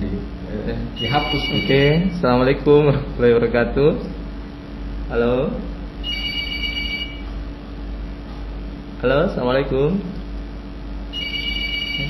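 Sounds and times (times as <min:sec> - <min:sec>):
steady low hum: 0:00.0 - 0:12.0
electronic telephone beep: 0:01.0 - 0:01.9, 0:06.1 - 0:07.2, 0:11.2 - 0:12.0.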